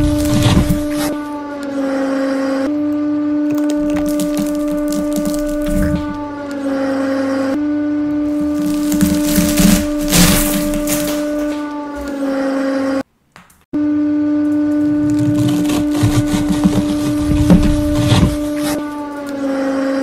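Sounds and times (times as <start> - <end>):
dry ramen blocks crunching: 0.0 - 1.2, 3.5 - 6.3, 8.2 - 11.6.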